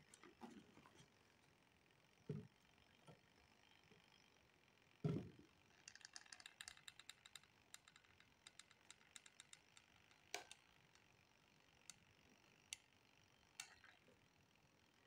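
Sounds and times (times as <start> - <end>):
hot glue gun clicking: 5.8 - 11.1.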